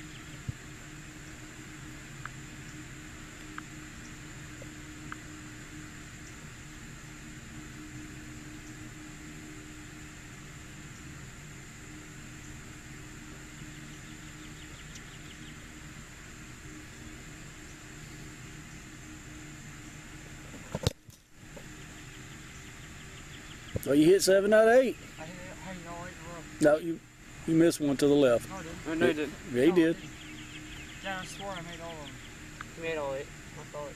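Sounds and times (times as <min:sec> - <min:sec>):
steady background hum: 0:00.0 - 0:33.9.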